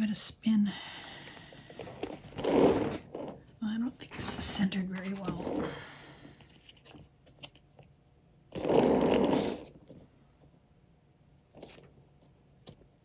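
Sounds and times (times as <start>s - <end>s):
board scraping as turned: 1.8s - 3.4s, 8.5s - 9.8s.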